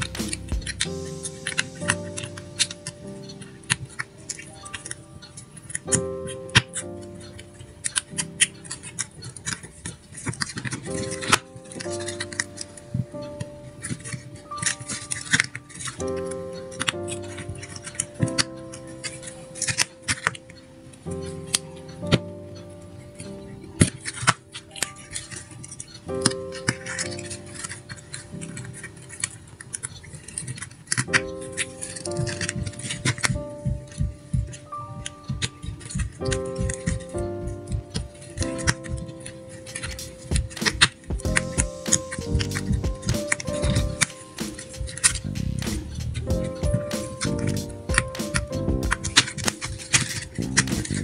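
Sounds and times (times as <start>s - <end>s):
slow background music: 0.0s - 51.0s.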